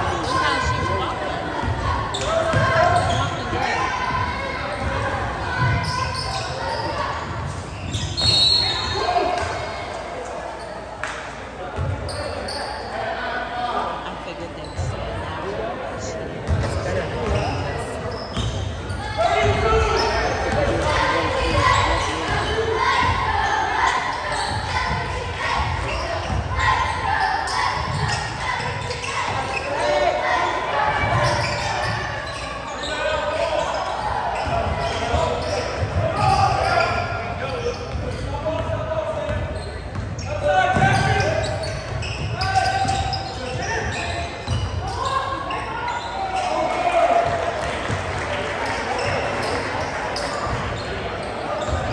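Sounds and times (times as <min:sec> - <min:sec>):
voices and shouts: 0:00.0 - 0:10.9, 0:18.9 - 0:51.9.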